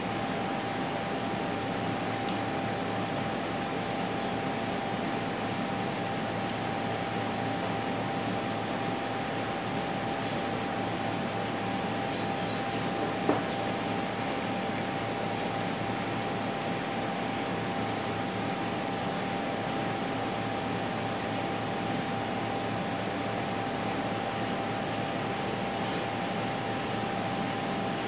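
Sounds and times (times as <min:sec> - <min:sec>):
ventilation unit hiss: 0:00.0 - 0:28.0.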